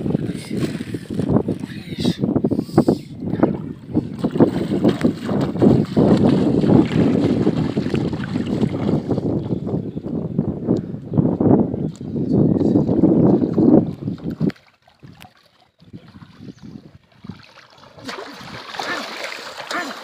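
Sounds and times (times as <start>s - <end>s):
wind buffeting microphone: 0.0s - 18.9s
water splashing around wading legs: 3.6s - 9.3s, 13.3s - 20.0s.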